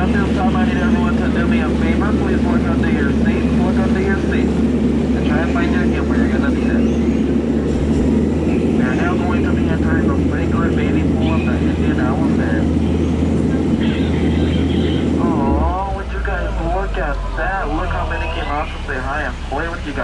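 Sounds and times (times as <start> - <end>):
boat motor droning: 0.0 - 20.0
person speaking: 13.5 - 20.0.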